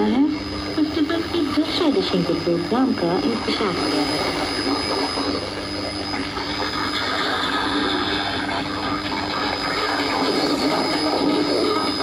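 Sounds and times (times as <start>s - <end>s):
faint steady radio tones: 0.0s - 12.0s
radio static and hiss: 0.0s - 12.0s.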